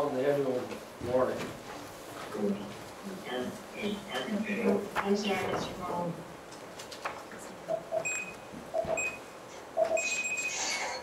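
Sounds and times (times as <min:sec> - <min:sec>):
electronic beeping signal: 0:07.8 - 0:09.2, 0:09.8 - 0:11.0.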